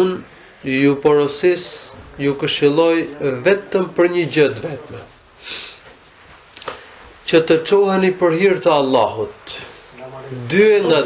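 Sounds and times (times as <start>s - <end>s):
man's short intake of breath: 5.4s - 5.9s.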